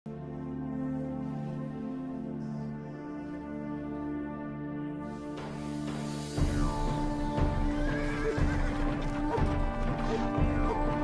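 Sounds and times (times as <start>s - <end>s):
background music: 0.1s - 11.0s
horse hooves galloping: 7.4s - 11.0s.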